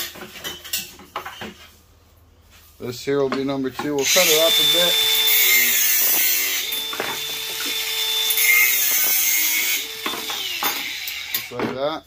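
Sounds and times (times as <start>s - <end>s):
angle grinder cutting copper pipe: 4.0s - 11.6s.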